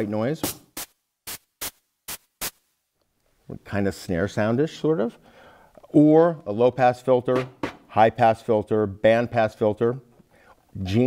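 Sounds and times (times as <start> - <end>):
electronic snare-like hits: 0.4 - 2.6, 7.3 - 7.9.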